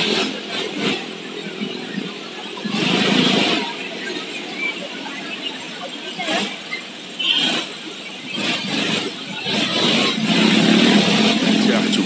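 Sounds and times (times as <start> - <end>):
steady traffic hum: 0.0 - 12.0
vehicle passing: 8.4 - 12.0.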